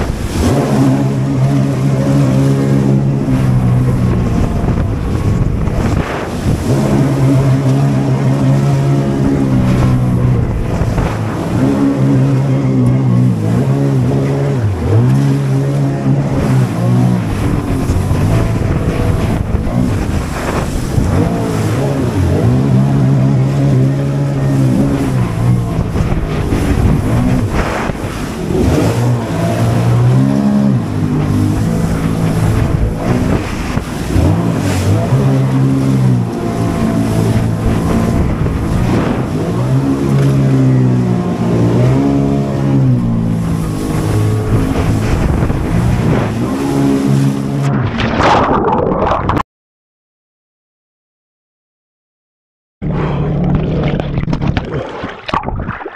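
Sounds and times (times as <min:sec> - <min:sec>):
jet ski engine running hard: 0:00.0 - 0:47.7.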